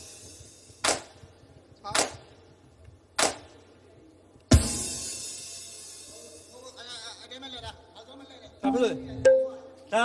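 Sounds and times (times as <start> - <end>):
sharp crack: 0.8 - 1.1, 1.9 - 2.2, 3.2 - 3.6.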